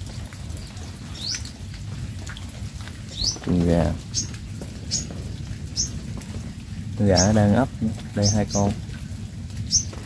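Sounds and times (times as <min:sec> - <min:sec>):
small bird chirping: 0:00.7 - 0:01.5, 0:03.1 - 0:05.1, 0:09.6 - 0:10.0.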